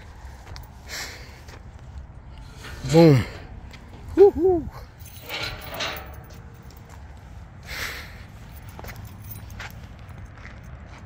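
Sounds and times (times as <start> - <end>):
footsteps on concrete: 8.5 - 11.0.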